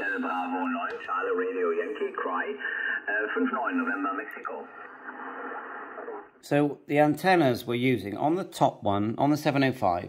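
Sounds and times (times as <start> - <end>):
voice over radio speaker: 0.0 - 6.4.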